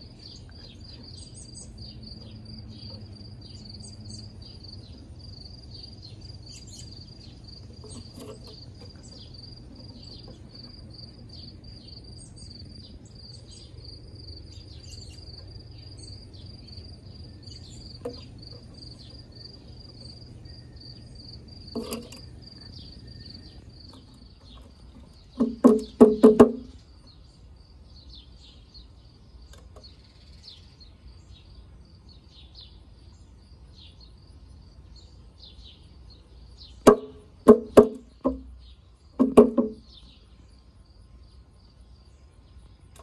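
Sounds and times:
insects chirping: 0:00.0 - 0:43.0.

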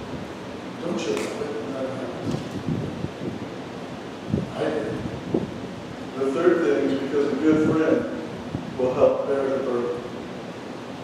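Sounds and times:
muffled puffs and rustling: 0:02.1 - 0:03.4.

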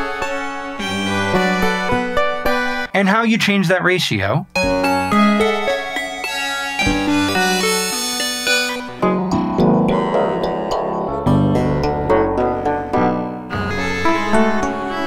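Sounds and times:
sampled synth melody: 0:06.9 - 0:14.5.

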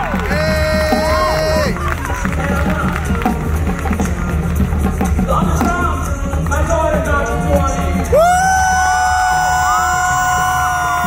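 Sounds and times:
audience whooping: 0:00.0 - 0:03.5, 0:07.4 - 0:11.0
hand drums and drum kit: 0:00.0 - 0:11.0.

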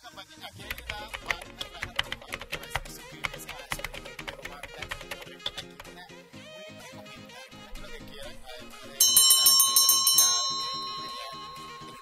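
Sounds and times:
background music: 0:00.0 - 0:12.0
rapid bell trill: 0:08.8 - 0:12.0.

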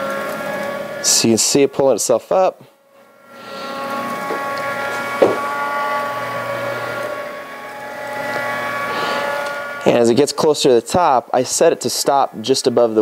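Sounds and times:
electric motor whining: 0:00.0 - 0:13.0
knock: 0:05.2 - 0:05.4.

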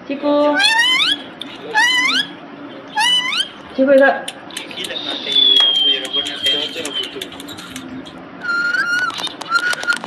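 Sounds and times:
parakeet high-pitched calls: 0:00.5 - 0:03.8, 0:08.4 - 0:10.0
parakeet whistle: 0:00.6 - 0:02.4, 0:03.0 - 0:03.6, 0:05.2 - 0:06.6, 0:08.4 - 0:10.0.

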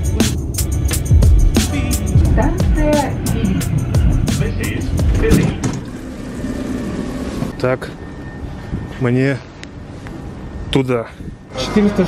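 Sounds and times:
background music: 0:00.0 - 0:07.4
electric train rumble: 0:00.0 - 0:12.0.

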